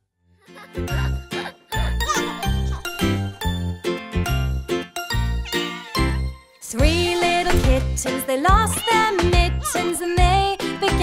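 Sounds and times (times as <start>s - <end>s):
instrumental children's music: 0.4s - 11.0s.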